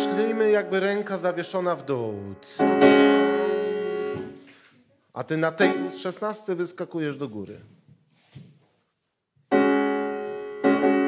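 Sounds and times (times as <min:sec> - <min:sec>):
piano chord ringing: 0:02.5 - 0:04.3.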